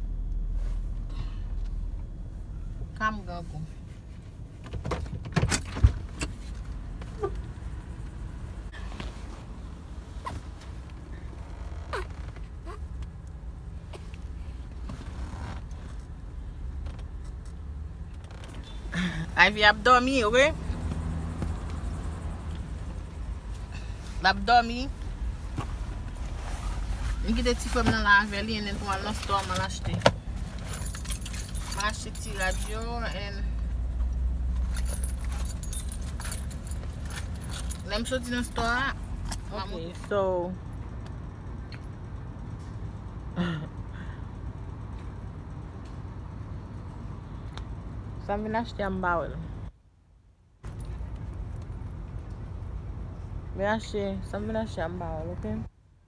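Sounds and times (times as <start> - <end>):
vehicle cabin rumble: 0.0 - 49.2
low hum inside car: 0.0 - 56.0
keys jingling and clicking: 30.6 - 33.1, 34.6 - 39.4.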